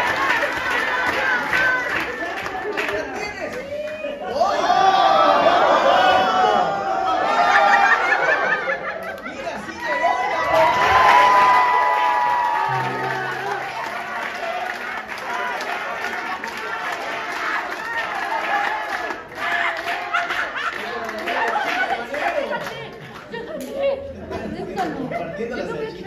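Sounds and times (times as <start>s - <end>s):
band holding a long note: 12.6s - 14.7s
low bass note: 12.7s - 14.2s.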